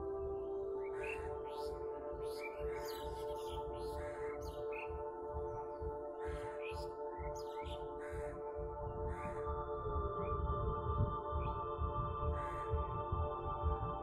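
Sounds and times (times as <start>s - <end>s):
birds chirping: 0.0s - 13.0s
ambient drone music: 0.0s - 14.0s.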